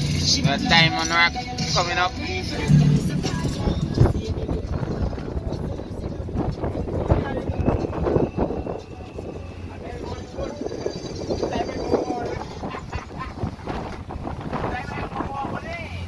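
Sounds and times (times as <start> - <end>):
sea noise: 0.0 - 16.0
wind: 0.0 - 16.0
indistinct voices: 0.4 - 16.0.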